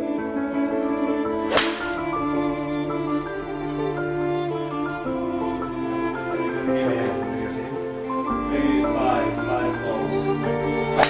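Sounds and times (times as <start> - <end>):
string music: 0.0 - 11.0
golf club striking ball: 1.4 - 2.3.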